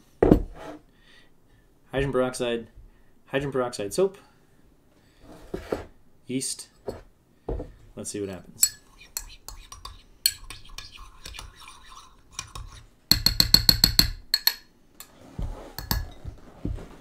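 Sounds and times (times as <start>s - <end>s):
spoon clinking against glass jar: 8.6s - 14.6s, 15.8s - 16.3s.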